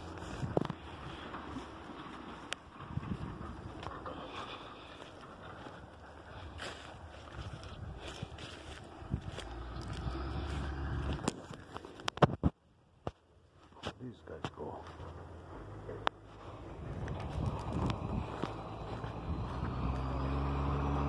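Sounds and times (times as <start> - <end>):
wind buffeting microphone: 0.0 - 12.5, 16.5 - 20.8
microphone handling noise: 10.5 - 12.6.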